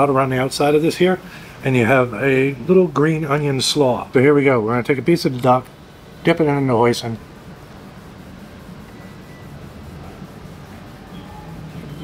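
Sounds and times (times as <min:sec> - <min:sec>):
room noise hum: 0:00.0 - 0:12.0.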